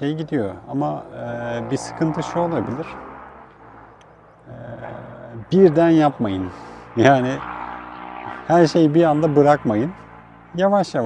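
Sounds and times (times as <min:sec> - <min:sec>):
man's hesitation sound: 0:04.4 - 0:05.6.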